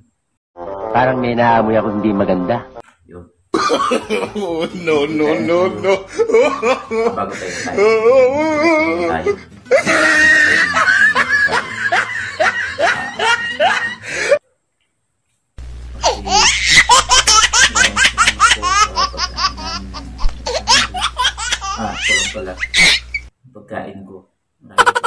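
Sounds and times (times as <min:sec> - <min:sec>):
rapid laughter: 0:09.7 - 0:14.4, 0:16.0 - 0:23.2, 0:24.8 - 0:25.0
low hum: 0:15.6 - 0:21.7.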